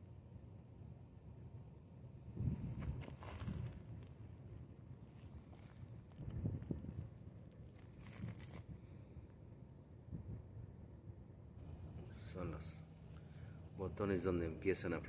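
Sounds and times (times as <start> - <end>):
wind buffeting microphone: 2.3 - 4.1, 6.1 - 7.2.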